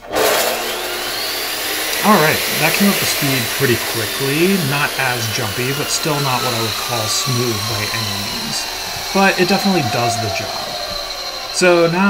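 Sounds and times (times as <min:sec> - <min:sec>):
chop saw motor whining: 0:00.0 - 0:12.0.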